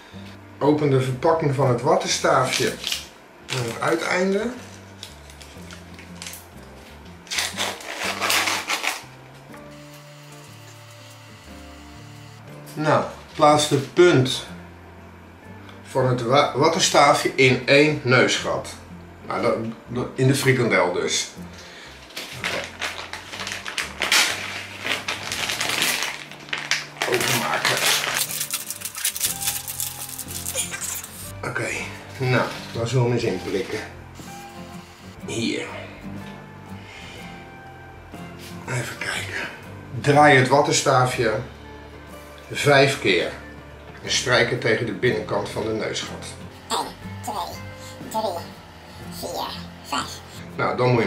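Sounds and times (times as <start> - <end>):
background music: 0.0 - 51.0
wrapper tearing and crinkling: 2.4 - 3.9, 4.7 - 6.4, 7.2 - 9.1, 22.2 - 31.3.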